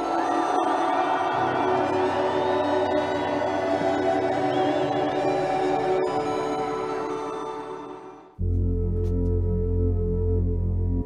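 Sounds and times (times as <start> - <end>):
ambient music with held tones: 0.0 - 11.0.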